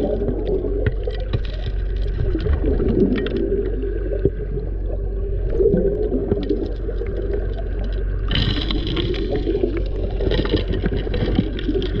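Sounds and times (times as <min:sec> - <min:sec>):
air bubbles hissing underwater: 0:00.0 - 0:10.3
underwater engine and pump hum: 0:00.0 - 0:12.0.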